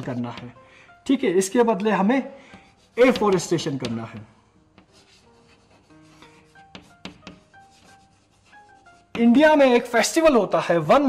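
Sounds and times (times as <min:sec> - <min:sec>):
faint background music: 0:00.0 - 0:11.0
chalk tapping on board: 0:01.7 - 0:09.4
chalk scratching on blackboard: 0:02.5 - 0:03.9, 0:04.8 - 0:09.4.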